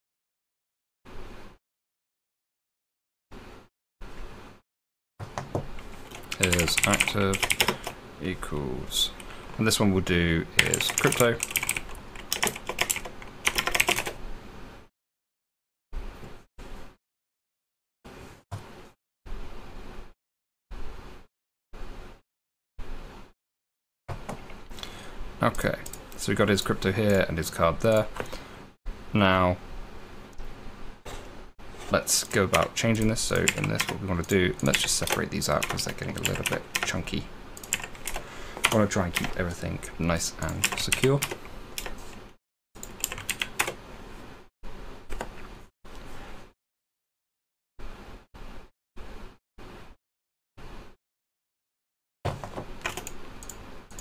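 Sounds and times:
faint hiss and low hum: 5.3s - 14.8s, 24.2s - 42.3s
computer keyboard key clicks: 52.8s - 53.2s.

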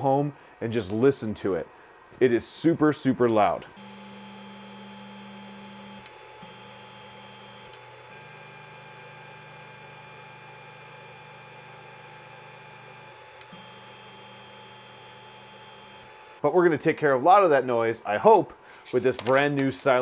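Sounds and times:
stepper motors whining: 3.7s - 16.4s.

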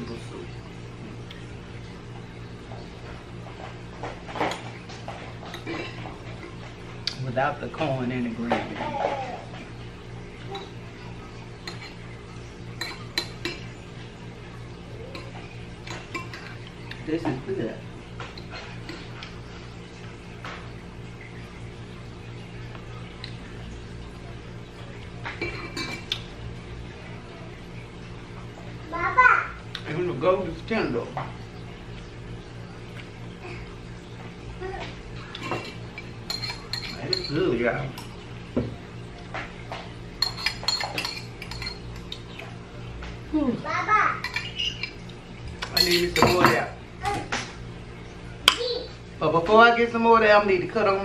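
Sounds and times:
metal spoon clinking on glass bowl: 35.4s - 37.4s, 40.2s - 41.8s, 45.6s - 46.6s.

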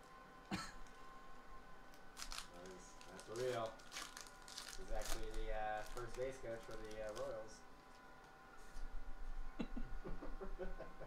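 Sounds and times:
wrapper being torn open: 1.9s - 8.3s.

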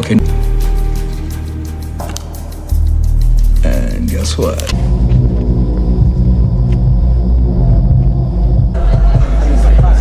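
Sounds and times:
deep rumbling drone: 0.2s - 10.0s.

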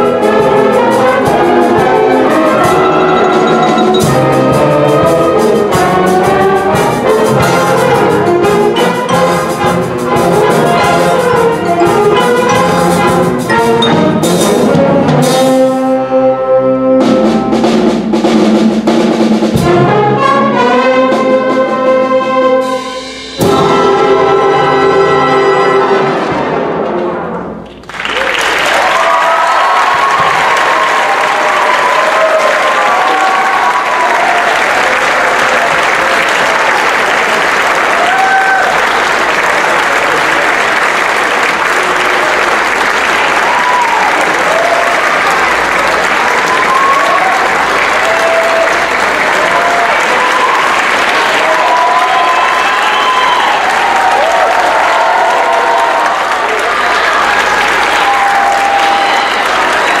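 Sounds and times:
audience applauding: 27.7s - 60.0s
cheers and whoops: 28.0s - 37.0s, 37.8s - 39.0s, 43.0s - 60.0s.

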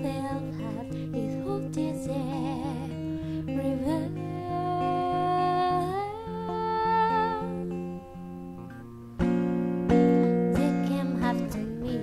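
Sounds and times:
clean electric guitar picking: 0.0s - 12.0s.

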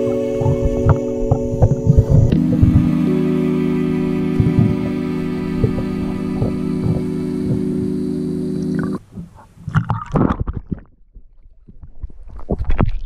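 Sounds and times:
muffled underwater bumps: 0.0s - 3.2s, 3.9s - 13.0s
background music with held tones: 0.0s - 9.0s
underwater water noise: 0.0s - 13.0s.

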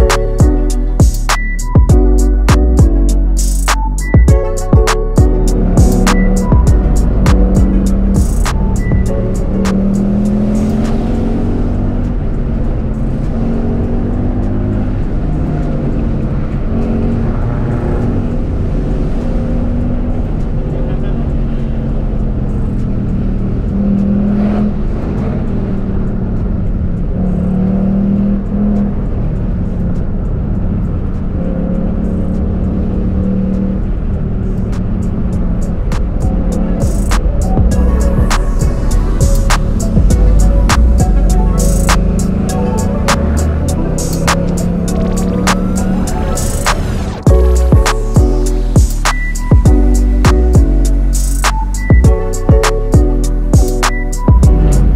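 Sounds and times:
music with a beat: 0.0s - 12.4s, 34.6s - 54.9s
car engine revving: 0.0s - 54.9s.

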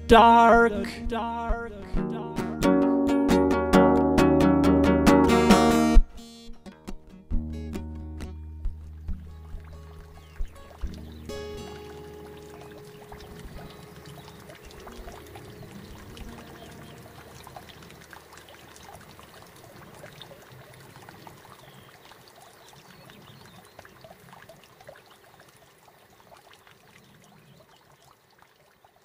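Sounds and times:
guitar chord ringing: 1.3s - 9.4s, 11.0s - 17.4s
small water splashes: 8.6s - 29.0s
water trickling and lapping: 8.6s - 29.0s.

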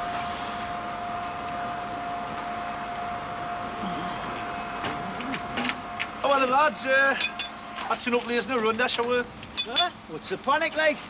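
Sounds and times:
site machinery drone: 0.0s - 10.5s
sharp clinks: 7.2s - 7.6s, 9.6s - 10.0s.

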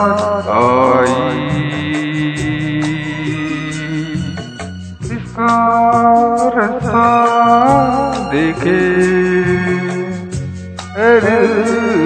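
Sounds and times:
backing music: 0.0s - 12.0s.

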